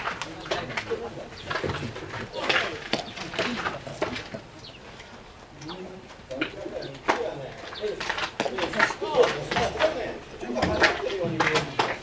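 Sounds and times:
baseball players shouting: 0:08.5 - 0:12.0.

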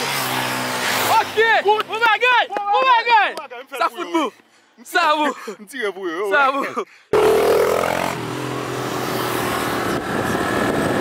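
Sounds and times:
motorcycle passing: 0:00.0 - 0:02.0, 0:07.2 - 0:11.0.

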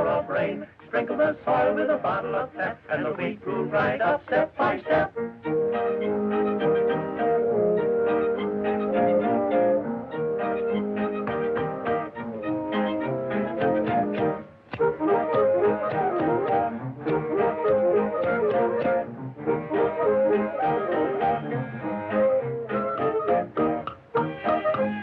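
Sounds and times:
lively cartoon music: 0:00.0 - 0:25.0.

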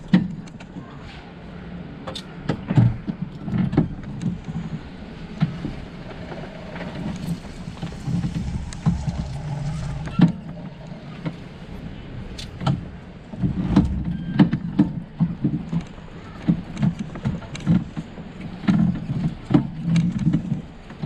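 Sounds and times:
cart knocking and rattling: 0:02.1 - 0:11.8, 0:12.4 - 0:21.0
golf cart drive hum: 0:03.0 - 0:21.0.

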